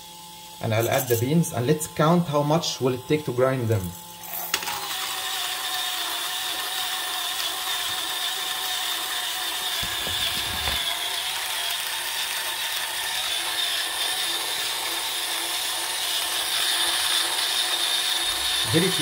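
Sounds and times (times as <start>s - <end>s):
burr grinder crushing coffee beans: 0.0s - 19.0s.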